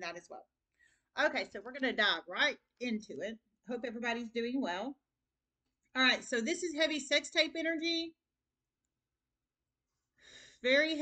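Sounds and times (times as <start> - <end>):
woman speaking: 1.2 - 5.0, 10.6 - 11.0.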